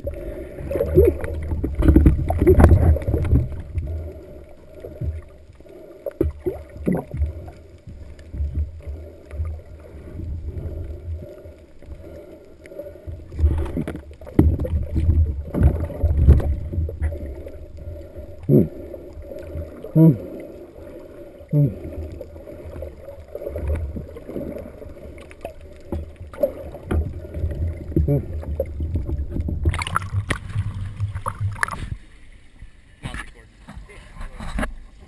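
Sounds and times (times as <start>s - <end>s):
underwater rushing and knocking: 0.0s - 34.8s.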